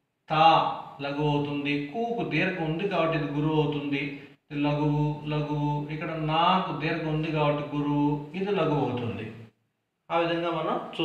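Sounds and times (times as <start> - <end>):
man chanting: 0.3 - 9.4.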